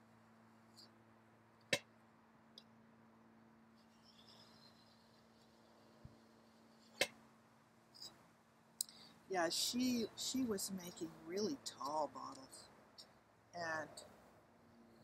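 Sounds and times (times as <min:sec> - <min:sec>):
light ticks: 0:08.8 - 0:09.1.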